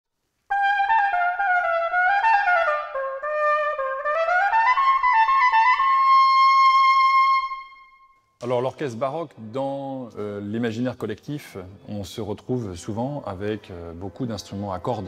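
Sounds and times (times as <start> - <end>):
cornett solo: 0.5 - 8.0.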